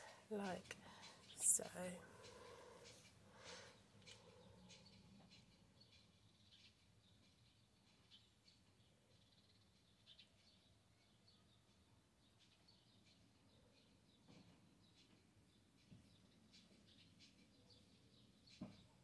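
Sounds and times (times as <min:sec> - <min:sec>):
faint ticks: 0:00.0 - 0:08.2.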